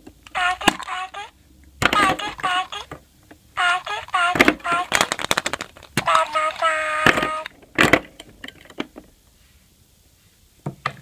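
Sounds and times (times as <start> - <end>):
high-pitched voice-like tones: 0.3 - 3.0, 3.6 - 7.6
plastic egg clicking and rattling: 1.8 - 3.0, 3.6 - 8.0.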